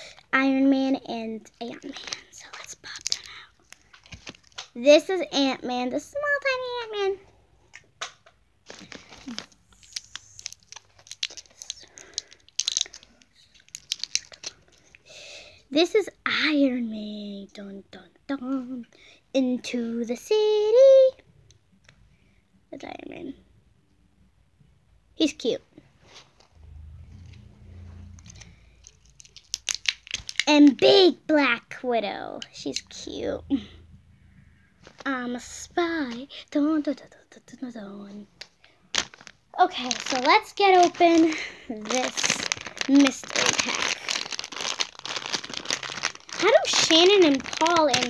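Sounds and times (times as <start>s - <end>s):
plastic packaging crinkling: 1.5s - 4.8s, 8.6s - 15.0s, 28.1s - 30.8s, 38.4s - 48.0s
handling noise rubbing rumble: 26.3s - 29.0s.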